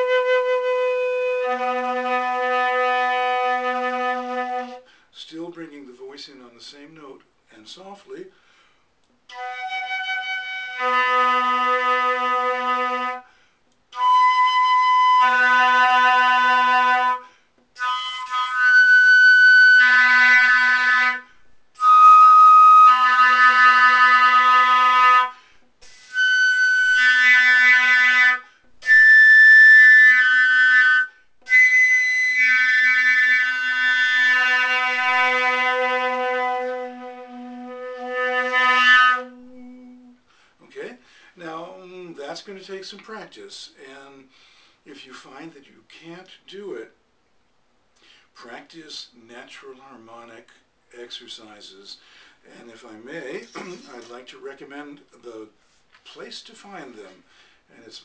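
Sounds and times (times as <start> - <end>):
flute playing harmonics: 0.0 - 4.9, 9.3 - 13.3, 13.9 - 40.3, 53.3 - 54.2
person singing into flute: 21.8 - 40.2.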